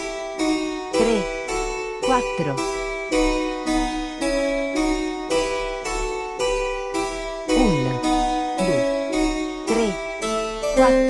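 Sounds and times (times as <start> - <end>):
harpsichord playing chords: 0.0 - 11.0.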